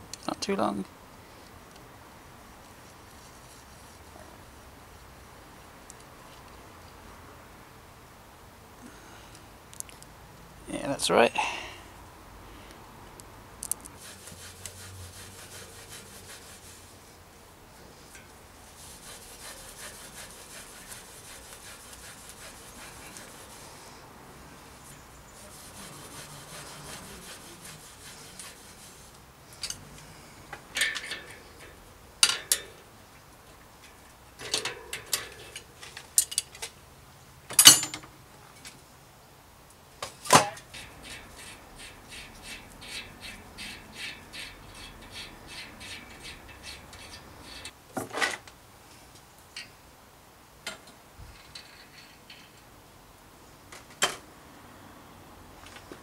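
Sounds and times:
rag rubbing bicycle rim: 0:14.0 - 0:17.1, 0:17.9 - 0:24.0, 0:24.8 - 0:29.2, 0:40.7 - 0:47.8
light ticks of hub axle: 0:40.7 - 0:47.8.

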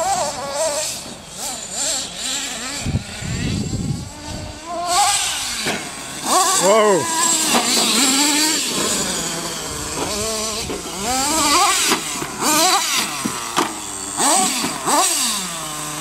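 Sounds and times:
small nitro engine revving: 0:00.0 - 0:16.0.

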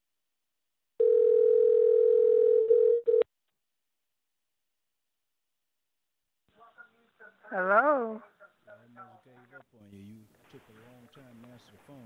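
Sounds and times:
telephone ringback tone: 0:01.0 - 0:03.2.

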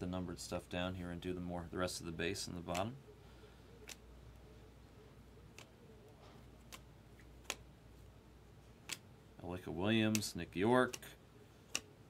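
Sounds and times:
trading cards clicking: 0:02.6 - 0:03.0, 0:03.8 - 0:04.1, 0:05.5 - 0:07.7, 0:08.8 - 0:09.1, 0:09.9 - 0:12.0.

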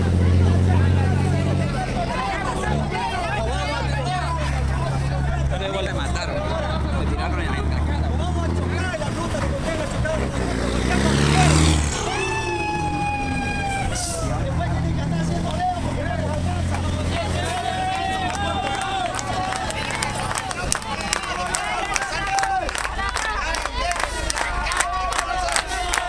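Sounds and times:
crowd voices and shouts: 0:00.0 - 0:26.0
truck diesel engine revving: 0:00.0 - 0:26.0.

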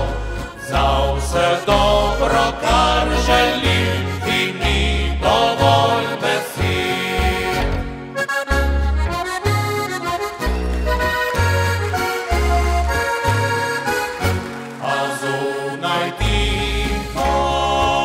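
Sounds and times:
double bass line: 0:00.0 - 0:14.5, 0:16.2 - 0:18.0
button accordion playing folk tune: 0:00.0 - 0:18.0.

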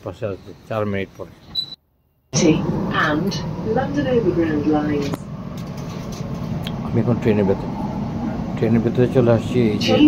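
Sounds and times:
train rumble inside carriage: 0:02.4 - 0:10.0.

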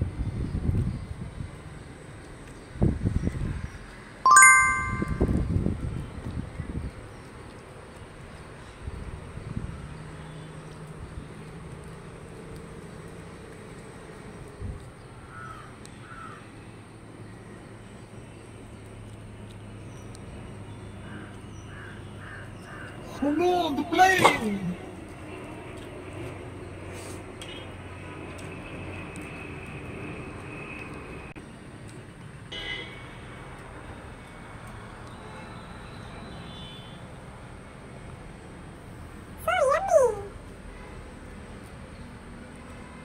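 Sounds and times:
high-pitched chirp: 0:04.3 - 0:05.4
bird cawing: 0:15.2 - 0:16.5, 0:21.0 - 0:23.0.

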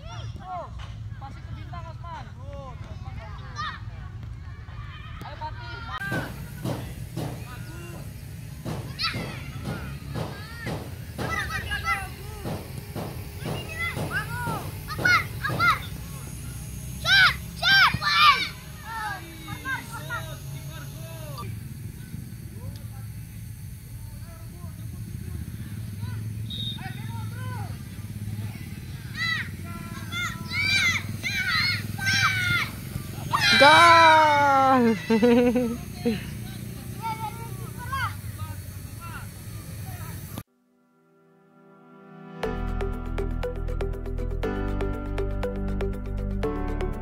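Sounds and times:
children shouting: 0:03.4 - 0:08.0, 0:08.6 - 0:16.2, 0:17.0 - 0:20.4, 0:27.4 - 0:36.3
person shouting: 0:33.3 - 0:36.2.

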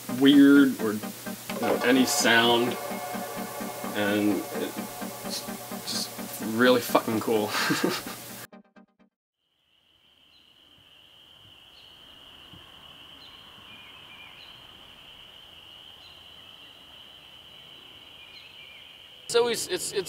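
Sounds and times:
brief rhythmic sound: 0:00.0 - 0:09.1.

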